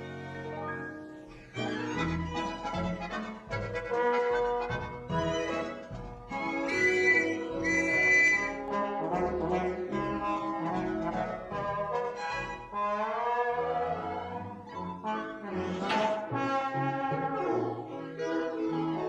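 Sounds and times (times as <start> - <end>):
orchestral cartoon music with brass: 0.0 - 19.0.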